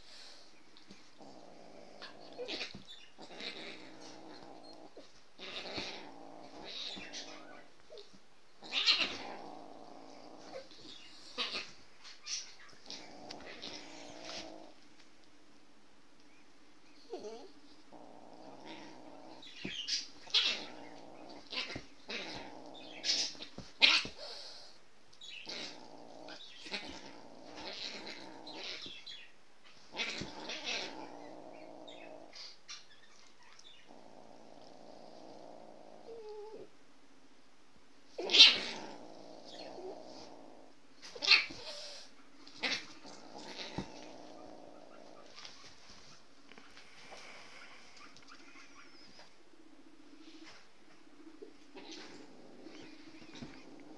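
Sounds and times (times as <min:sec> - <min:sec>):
growling yowls: 0:01.2 - 0:14.8, 0:17.0 - 0:36.7, 0:38.2 - 0:46.2.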